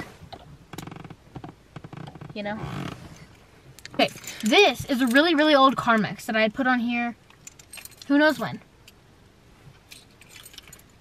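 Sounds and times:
keys clinking: 7.3s - 8.6s, 9.9s - 11.0s.

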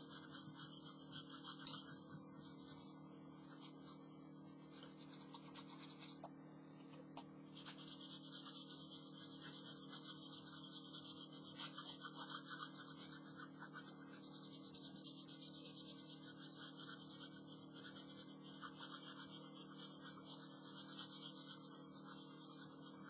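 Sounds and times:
pencil scratching on paper: 0.0s - 6.2s, 7.5s - 23.0s.

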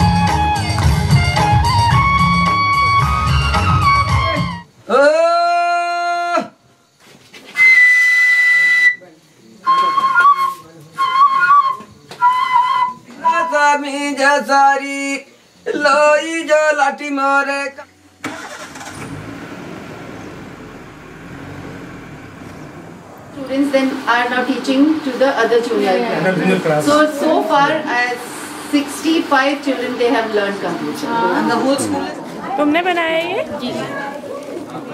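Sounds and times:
shrill breathy whistle: 7.5s - 13.6s
vehicle engine running: 18.2s - 25.7s.

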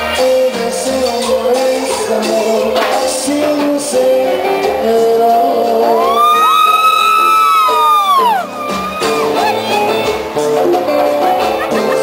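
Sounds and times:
live cumbia band music: 0.0s - 12.0s
person whooping: 5.9s - 10.0s.

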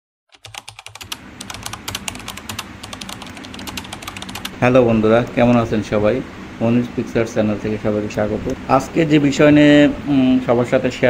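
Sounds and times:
keyboard typing clicks: 0.3s - 4.5s
faint steady hum: 0.5s - 11.0s.

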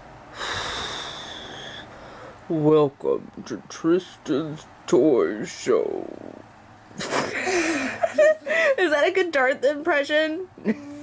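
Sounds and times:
woman imitating respirator breathing: 0.3s - 2.4s.

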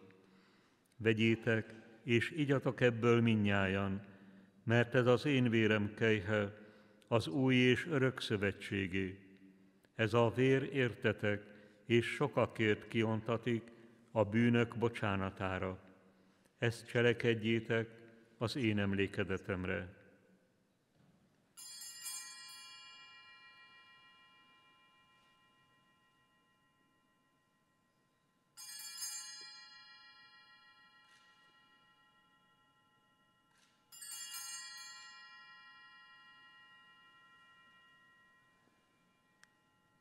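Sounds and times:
altar bell ringing: 21.6s - 27.9s, 28.6s - 40.0s.

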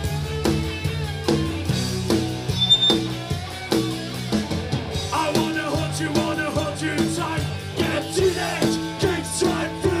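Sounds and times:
drum kit: 0.0s - 10.0s
electric bass: 0.0s - 10.0s
electric guitars: 0.0s - 10.0s.

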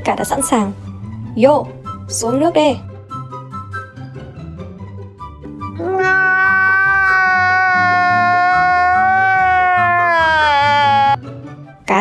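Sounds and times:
man wailing cry: 5.8s - 11.2s.

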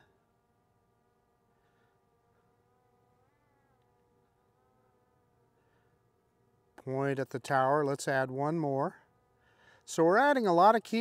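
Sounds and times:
distant drone propeller buzz: 0.0s - 11.0s.

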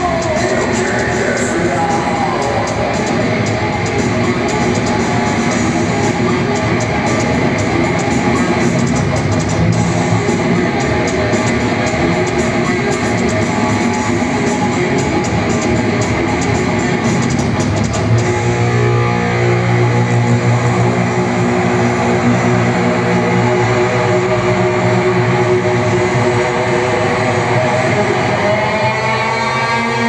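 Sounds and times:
distorted electric guitar: 0.0s - 30.0s.

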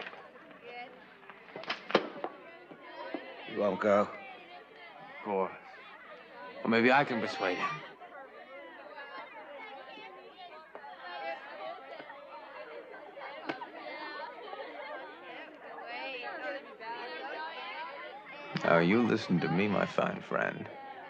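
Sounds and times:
background chatter of voices: 0.0s - 21.0s.

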